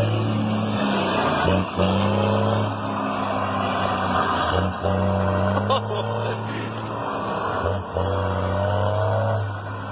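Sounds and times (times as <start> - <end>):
diesel truck engine pulling: 0.0 - 9.9.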